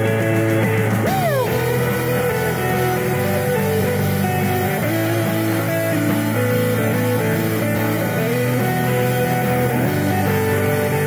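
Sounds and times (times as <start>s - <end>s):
rock band playing live: 0.0s - 11.0s
sliding guitar notes: 0.0s - 11.0s.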